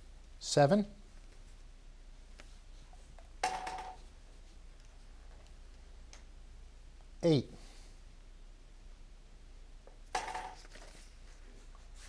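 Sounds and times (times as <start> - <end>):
low room hum: 0.0 - 12.0
lottery ball clacking in tube: 3.4 - 4.0, 10.1 - 10.7.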